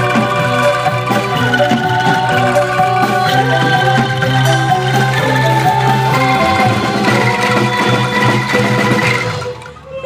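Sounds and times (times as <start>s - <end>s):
bass: 0.0s - 10.0s
drums: 0.0s - 10.0s
mallet notes: 0.0s - 10.0s.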